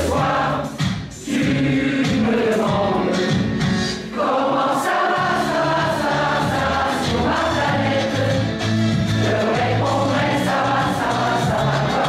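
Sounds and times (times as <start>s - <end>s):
mixed choir singing in parts: 0.0s - 12.0s.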